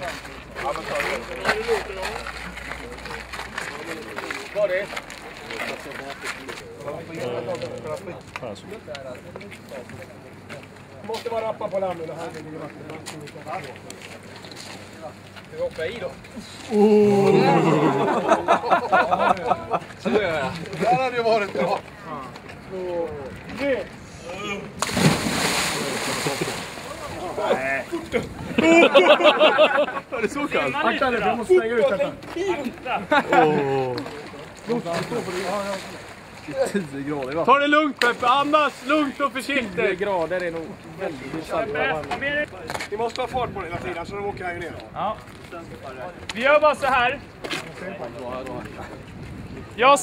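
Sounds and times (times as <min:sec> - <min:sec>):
men chattering: 0:00.0 - 0:49.1
churning water rushing: 0:24.6 - 0:28.8, 0:34.1 - 0:36.8
heavy splash into water: 0:24.8 - 0:27.1.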